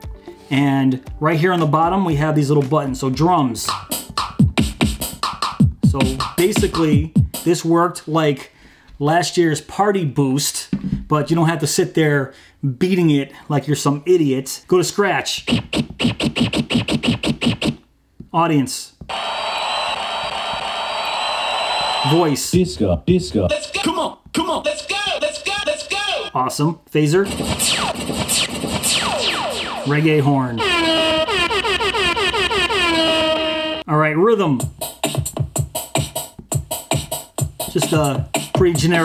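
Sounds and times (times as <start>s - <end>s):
drum machine kick drums: 1.1s - 7.6s, 10.7s - 11.2s, 15.4s - 17.8s, 22.6s - 26.2s, 27.2s - 29.9s, 30.6s - 33.4s, 34.6s - 39.0s
recorded crowd cheering: 19.1s - 22.6s.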